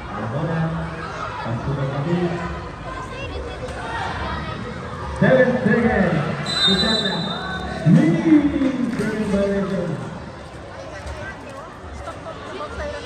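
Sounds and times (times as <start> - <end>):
people talking and calling out: 0.0 - 13.0
short high whistle blast: 6.4 - 7.4.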